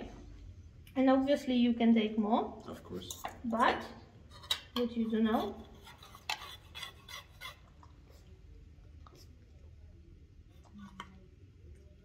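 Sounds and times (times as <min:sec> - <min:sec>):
metal spoon scraping steel pot: 0:04.3 - 0:07.6.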